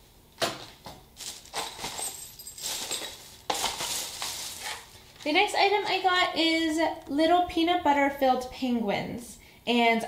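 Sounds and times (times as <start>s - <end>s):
plastic packaging rustling: 0.6s - 6.1s.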